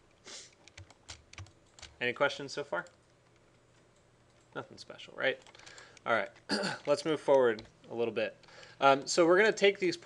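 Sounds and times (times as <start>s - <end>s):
keyboard and mouse clicking: 0.5s - 2.0s, 5.3s - 7.8s.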